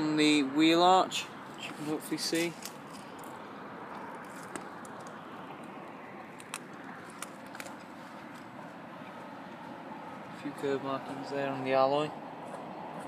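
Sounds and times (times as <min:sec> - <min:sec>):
outdoor background noise: 0:00.0 - 0:13.0.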